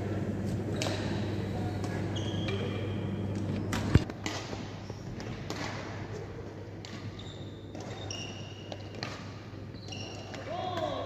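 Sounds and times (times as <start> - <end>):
steady low hum: 0.0 - 6.8
shoe squeaks on wooden court: 0.7 - 3.3, 7.0 - 9.0, 9.7 - 10.4.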